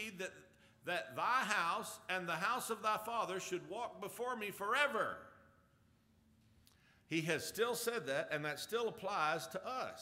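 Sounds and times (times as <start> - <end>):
word echoing in a room: 0.0 - 10.0.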